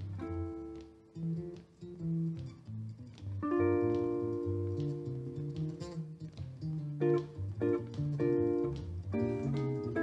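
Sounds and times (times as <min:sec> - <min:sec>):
guitars playing: 0:00.0 - 0:10.0.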